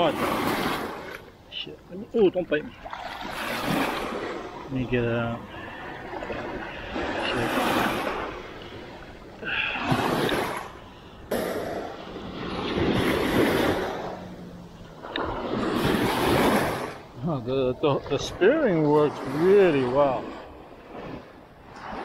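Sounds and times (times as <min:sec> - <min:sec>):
small waves washing over sand: 0:00.0 - 0:22.0.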